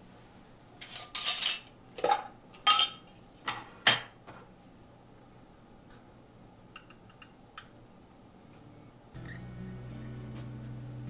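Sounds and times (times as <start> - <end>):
kitchenware scraping rattle: 0.8 - 4.1
kitchenware clinking: 0.8 - 4.2.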